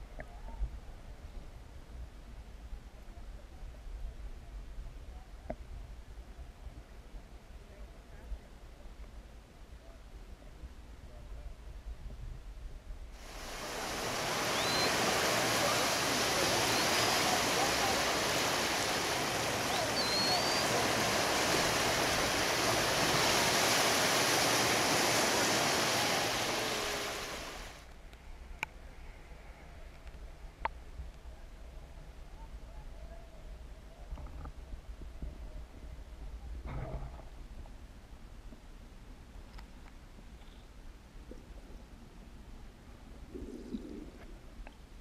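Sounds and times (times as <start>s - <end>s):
quiet underwater background: 13.0s - 24.7s, 25.7s - 45.0s
seawater washing and splashing: 13.2s - 27.9s
underwater low rumble: 40.2s - 45.0s.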